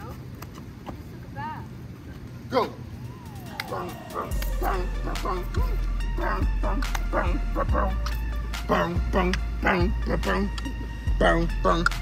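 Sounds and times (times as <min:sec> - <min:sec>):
music with deep bass: 0:03.1 - 0:12.0
dog yipping and barking: 0:03.5 - 0:05.7.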